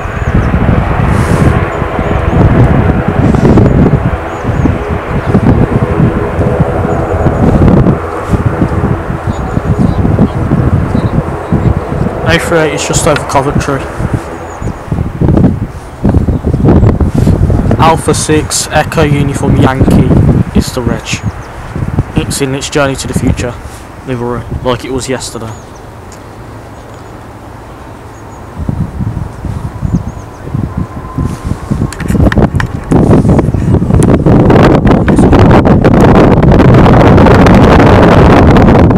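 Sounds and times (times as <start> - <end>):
turboprop airliner taking off: 0.0 - 38.9
wind buffeting microphone: 0.0 - 38.9.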